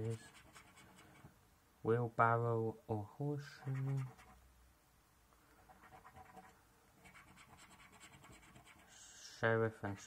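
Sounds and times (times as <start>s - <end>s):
coin scratching a scratchcard: 0.0s - 1.2s, 3.6s - 4.4s, 5.6s - 8.9s.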